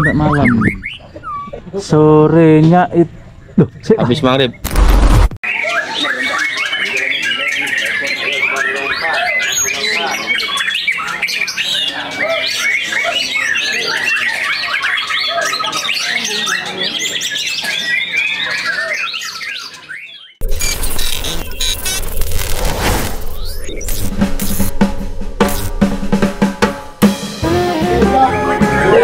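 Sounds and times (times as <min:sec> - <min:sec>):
bird singing rapid song: 0:00.0 - 0:01.6, 0:05.4 - 0:22.1
drum-heavy music: 0:23.7 - 0:29.0.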